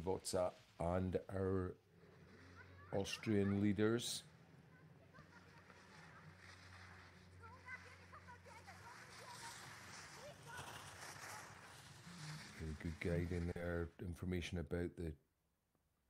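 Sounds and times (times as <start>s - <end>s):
distant voices: 0.0s - 14.2s
quiet hiss: 0.0s - 15.2s.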